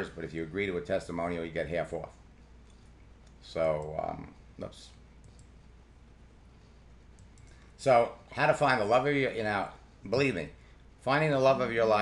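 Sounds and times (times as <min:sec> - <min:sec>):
low electrical hum: 0:00.0 - 0:12.0
computer mouse clicks: 0:05.2 - 0:05.7, 0:07.1 - 0:07.7.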